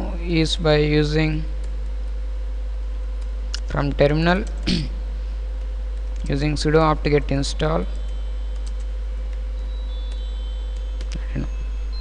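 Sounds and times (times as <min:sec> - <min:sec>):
steady low hum: 0:00.0 - 0:12.0
faint steady tone: 0:06.8 - 0:12.0.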